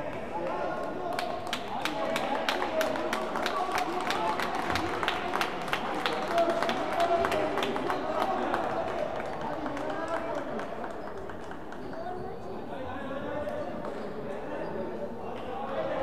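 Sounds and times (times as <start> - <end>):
spectators' voices: 0.0 - 16.0
sharp hand claps: 1.1 - 12.0.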